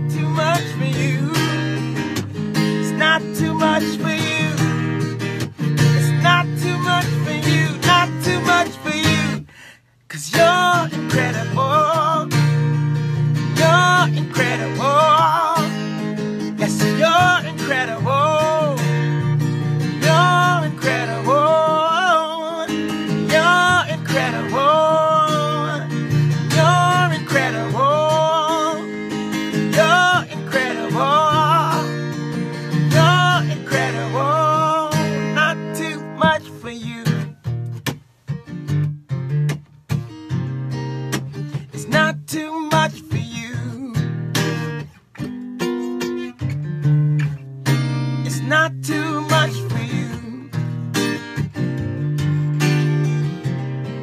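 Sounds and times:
acoustic guitar strumming: 0.0s - 54.0s
man singing long notes: 20.0s - 25.9s, 26.5s - 28.9s, 29.7s - 31.9s.

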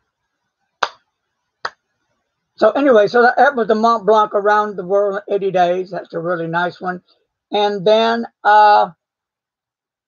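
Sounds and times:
slow hand claps: 0.8s - 1.9s.

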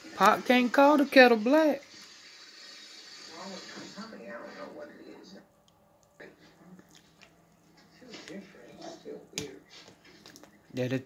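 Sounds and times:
faint television speech: 3.2s - 11.0s.

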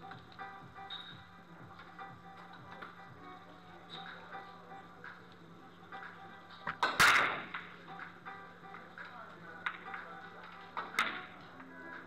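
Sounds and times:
billiard balls clacking: 6.6s - 7.8s.

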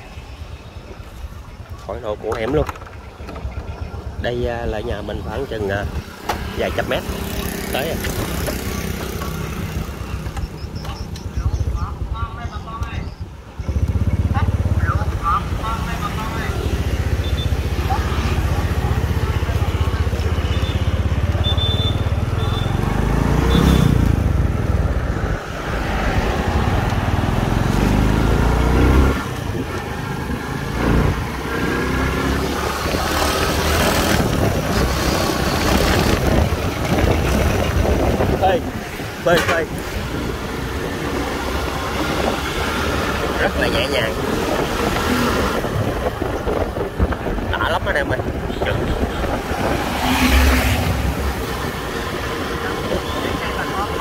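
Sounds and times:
motorcycle engine running: 13.5s - 24.7s.

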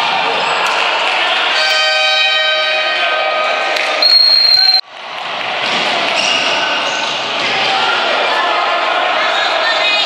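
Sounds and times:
sports hall noise: 0.0s - 10.0s
referee's whistle blast: 4.0s - 4.8s.

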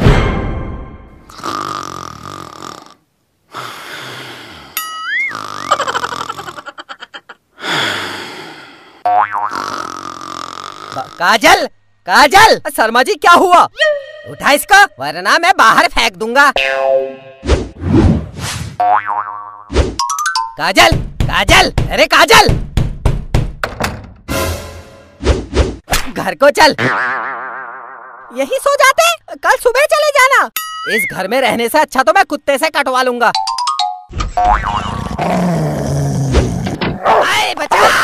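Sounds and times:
cartoon snoring: 1.3s - 6.6s, 7.6s - 11.2s, 34.8s - 36.8s.

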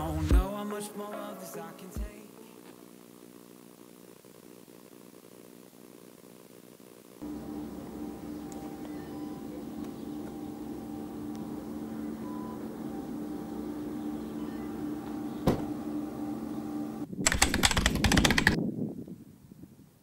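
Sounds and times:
low mechanical hum: 0.0s - 20.0s
loud rapid clattering: 17.2s - 18.6s.

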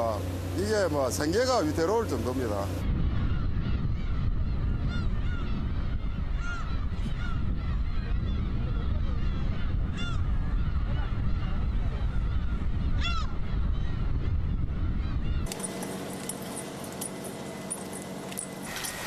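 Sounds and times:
gulls calling: 0.0s - 19.0s.

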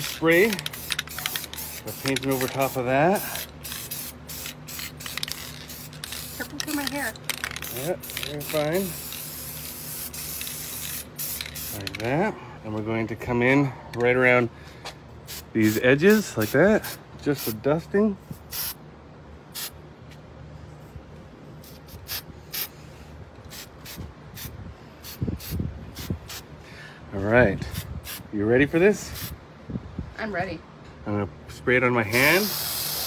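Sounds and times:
spray can hissing: 0.0s - 12.0s, 18.4s - 18.8s, 19.5s - 19.8s, 21.6s - 22.7s, 32.1s - 33.0s.

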